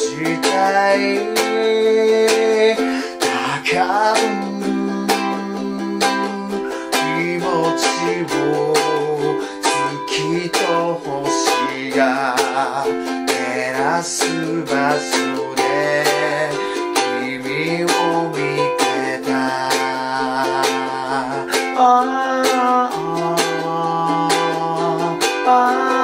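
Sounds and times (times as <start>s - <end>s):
man singing: 0.0s - 26.0s
ukulele strumming chords: 0.0s - 26.0s.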